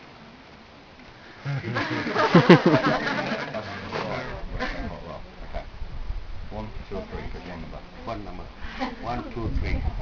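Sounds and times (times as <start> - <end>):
people laughing: 1.4 - 5.1, 8.6 - 9.4.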